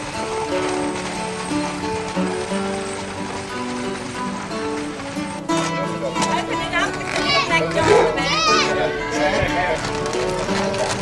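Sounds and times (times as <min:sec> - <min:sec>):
background music: 0:00.0 - 0:11.0
children's voices calling out: 0:00.0 - 0:11.0.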